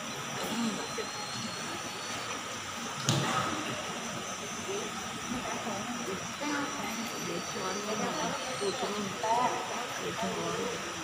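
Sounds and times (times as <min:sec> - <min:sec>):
faint indistinct voices: 0:00.0 - 0:11.0
room noise hiss: 0:00.0 - 0:11.0.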